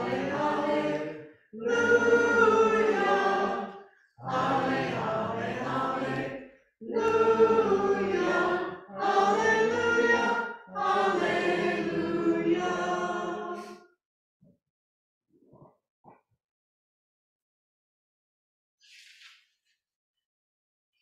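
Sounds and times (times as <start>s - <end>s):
congregation singing a hymn: 0.0s - 13.8s.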